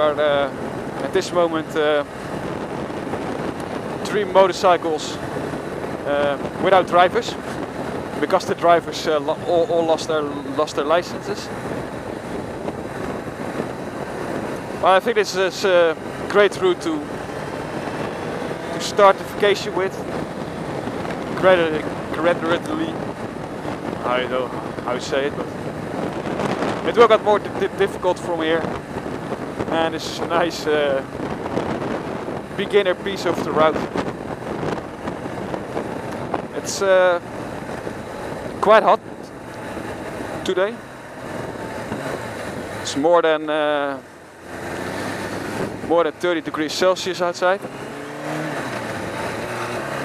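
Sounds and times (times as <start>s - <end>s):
motorcycle engine droning: 0.0s - 50.0s
wind rushing over microphone: 0.0s - 50.0s.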